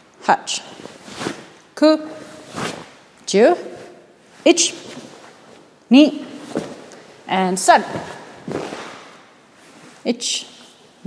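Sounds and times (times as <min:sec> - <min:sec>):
sharp swish: 0:08.5 - 0:09.3.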